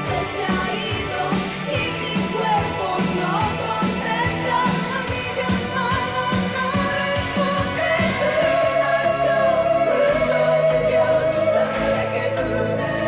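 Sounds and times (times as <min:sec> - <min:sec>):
steady drum beat: 0:00.0 - 0:12.0
woman singing pop song: 0:00.0 - 0:13.0.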